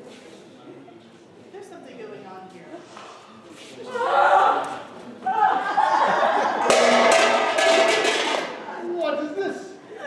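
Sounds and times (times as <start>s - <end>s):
voices exclaiming with laughter: 3.9s - 6.7s.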